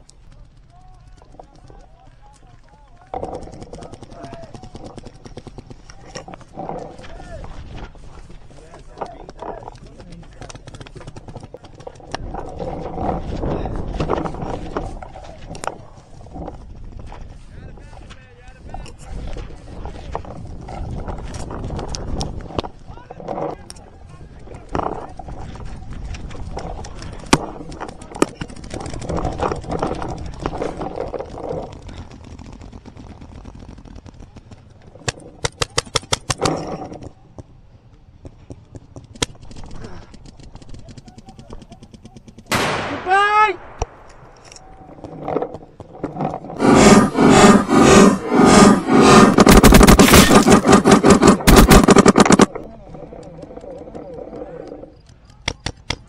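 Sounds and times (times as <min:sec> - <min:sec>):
paintball markers firing: 0:03.0 - 0:06.5, 0:09.0 - 0:12.5, 0:26.7 - 0:36.6, 0:38.2 - 0:46.0, 0:46.6 - 0:52.6, 0:55.1 - 0:56.0.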